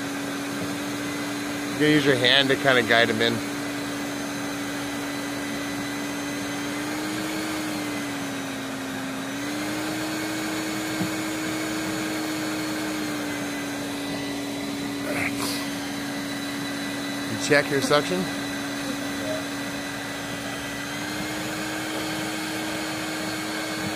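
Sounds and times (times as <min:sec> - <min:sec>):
vacuum motor hum: 0:00.0 - 0:23.9.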